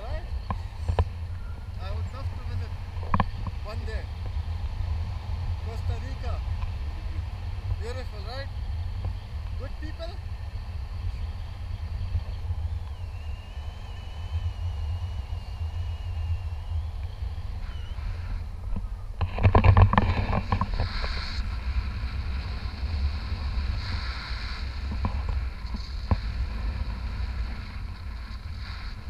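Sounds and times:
wind rushing over microphone: 0.0 - 29.0
thin high wavering tone: 0.3 - 3.5.

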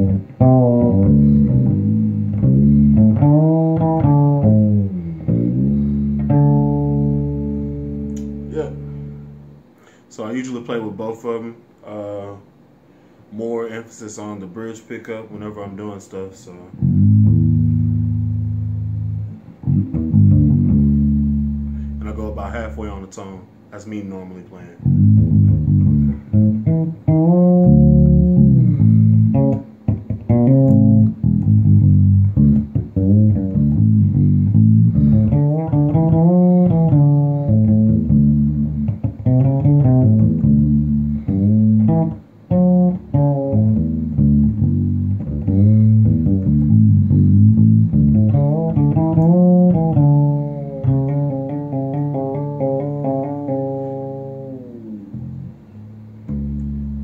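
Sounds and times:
fretless electric bass groove: 0.0 - 9.7, 16.8 - 23.0, 24.8 - 57.0.

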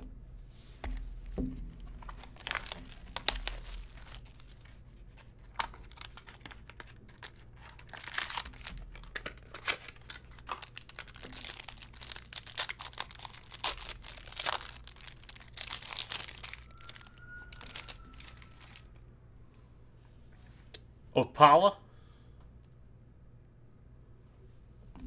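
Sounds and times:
cellophane crinkling: 1.8 - 19.0
plastic wrapper tearing: 1.8 - 19.0.

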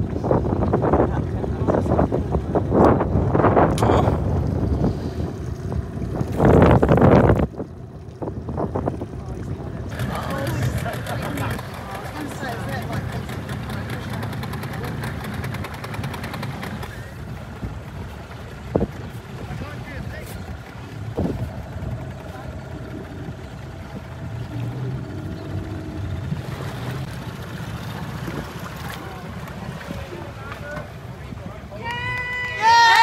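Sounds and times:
wind on microphone: 0.0 - 32.4
boat motor running: 0.0 - 33.0
water wash: 0.0 - 33.0.

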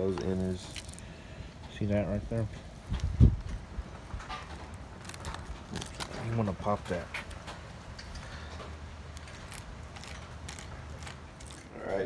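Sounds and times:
knife scraping fish: 9.1 - 11.7.

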